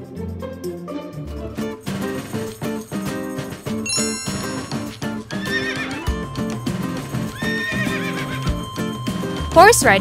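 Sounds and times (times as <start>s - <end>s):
background music: 0.0s - 10.0s
horse whinnying: 5.3s - 6.2s, 7.3s - 8.6s.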